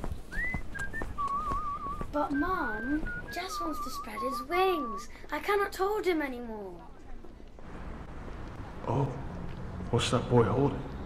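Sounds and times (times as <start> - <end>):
person whistling: 0.3 - 5.2.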